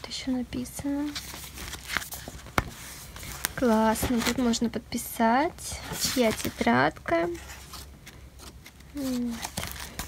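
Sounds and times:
notebook pages rustling: 0.6 - 4.7, 5.7 - 10.0.

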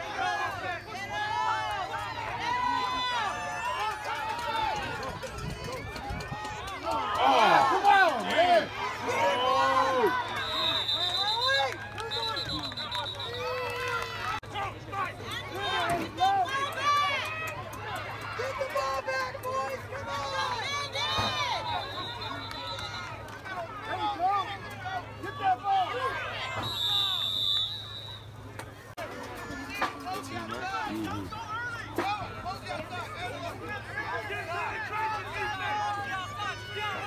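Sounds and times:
spectators shouting: 0.0 - 28.5, 29.3 - 37.0.

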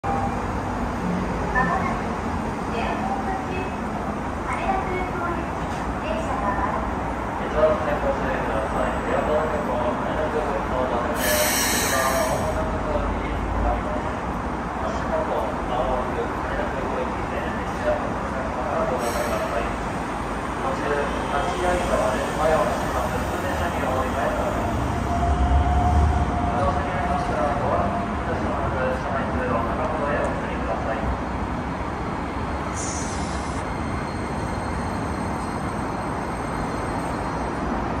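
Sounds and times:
air hiss: 11.2 - 12.5
electric train slowing: 32.6 - 38.0.

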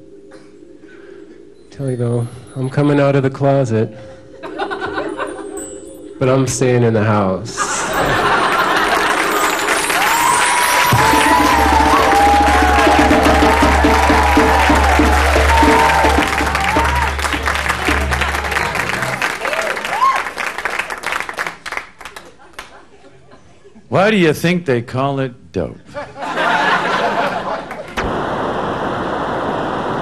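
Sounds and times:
audience applauding: 7.8 - 22.8
bass and hand percussion: 7.9 - 19.7.

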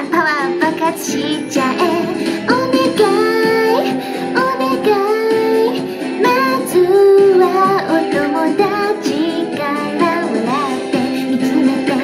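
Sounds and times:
backing track: 0.0 - 12.0
woman singing pop into microphone: 0.0 - 12.0.

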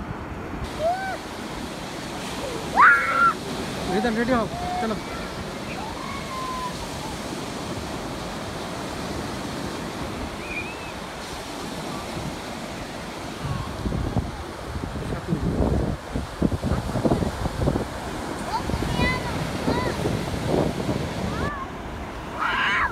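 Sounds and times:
surf breaking on beach: 0.0 - 22.9
wind buffeting microphone: 0.0 - 22.9.

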